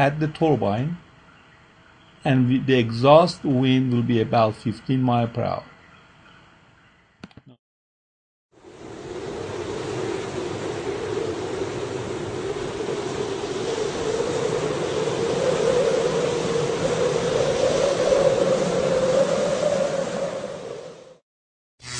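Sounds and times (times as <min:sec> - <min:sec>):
wind rushing noise: 0:08.6 - 0:21.2.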